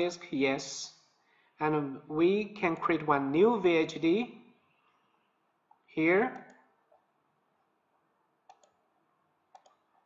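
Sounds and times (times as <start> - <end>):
computer mouse clicks: 6.4 - 7.1, 8.4 - 8.9, 9.5 - 10.0.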